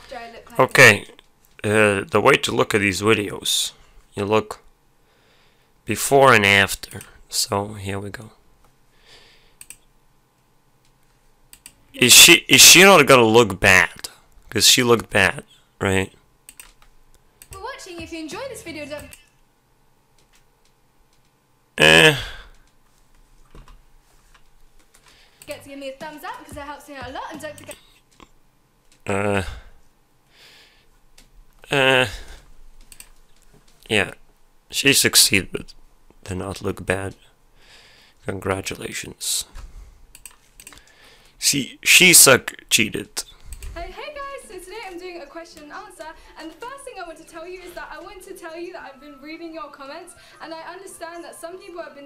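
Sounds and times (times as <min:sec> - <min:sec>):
man speaking: 0:00.5 - 0:04.6, 0:05.9 - 0:08.4, 0:12.0 - 0:16.2, 0:21.8 - 0:22.5, 0:29.0 - 0:29.7, 0:31.6 - 0:32.4, 0:33.8 - 0:37.2, 0:38.2 - 0:39.6, 0:41.4 - 0:43.4
sharp clicks: 0:09.6 - 0:09.9, 0:10.8 - 0:11.8, 0:16.5 - 0:17.6, 0:32.8 - 0:33.8, 0:40.1 - 0:41.0.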